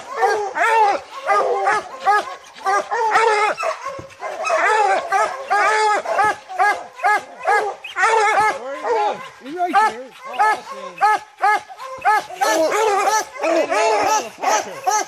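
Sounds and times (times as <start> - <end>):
hounds barking: 0.0 - 15.0.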